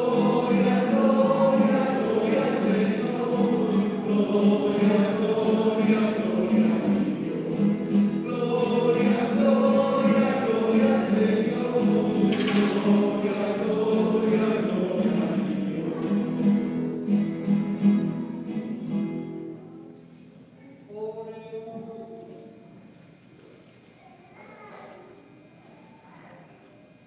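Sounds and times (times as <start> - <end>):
choir singing: 0.0 - 17.2.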